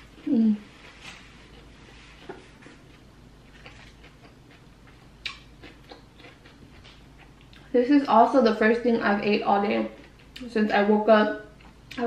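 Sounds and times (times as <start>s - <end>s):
chip crunching: 1.4s - 7.7s.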